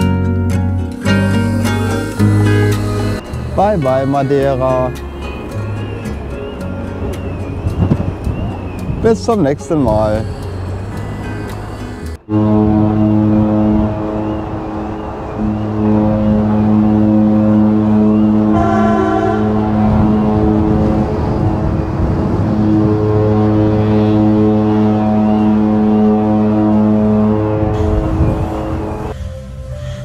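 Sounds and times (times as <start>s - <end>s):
music playing: 0.0s - 30.0s
deep ship horn blasts: 0.9s - 6.0s, 9.8s - 29.2s.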